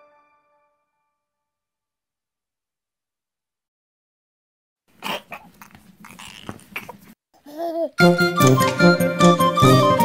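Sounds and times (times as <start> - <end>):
toddler whimpering and crying: 5.1 - 8.0.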